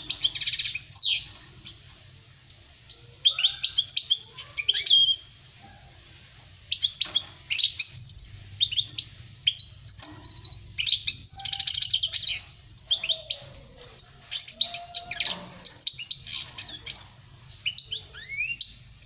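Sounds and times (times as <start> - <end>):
goldfinch twittering song: 0.0 - 1.8, 6.7 - 19.0.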